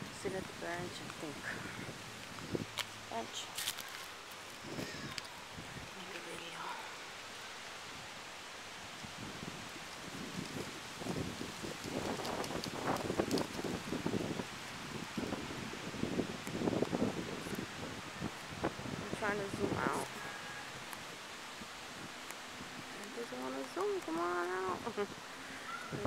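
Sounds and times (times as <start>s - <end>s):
wind buffeting microphone: 0.0s - 3.5s, 4.6s - 6.1s, 9.0s - 20.4s, 21.9s - 26.0s
rustling leaves: 0.0s - 26.0s
wind gusting: 0.0s - 26.0s.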